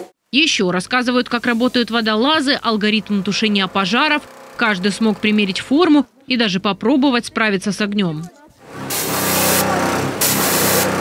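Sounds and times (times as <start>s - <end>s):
fire hose spraying water: 1.3s - 2.6s, 8.7s - 11.0s.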